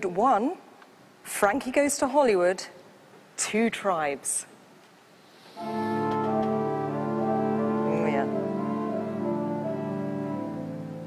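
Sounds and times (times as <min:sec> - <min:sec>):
pipe organ chord: 0:05.6 - 0:11.0.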